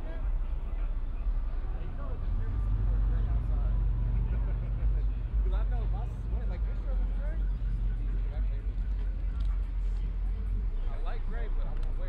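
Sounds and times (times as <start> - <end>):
people talking: 0.0 - 12.0
steady low rumble: 0.0 - 12.0.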